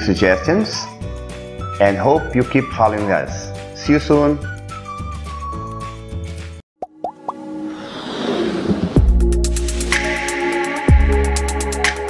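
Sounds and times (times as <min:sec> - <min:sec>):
quick rising pops: 0:06.8 - 0:10.1
whoosh: 0:07.5 - 0:10.1.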